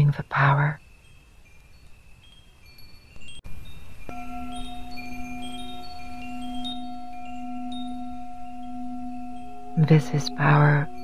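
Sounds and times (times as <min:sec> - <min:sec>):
wind chimes tinkling: 0:00.0 - 0:11.0
singing bowl ringing: 0:00.8 - 0:11.0.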